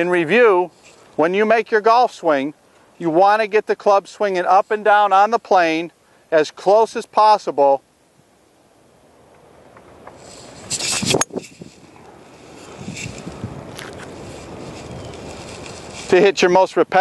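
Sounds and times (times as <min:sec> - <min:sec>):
golf club swishing: 0:10.1 - 0:16.2
wind on microphone: 0:10.2 - 0:16.2.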